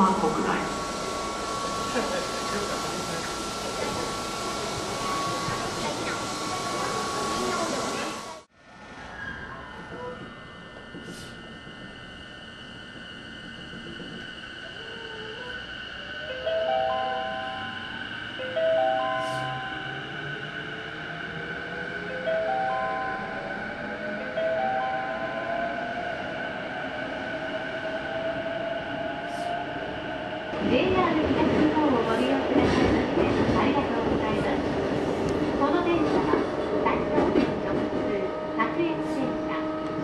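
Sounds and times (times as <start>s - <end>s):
train traction motor whine: 0.0s - 30.6s.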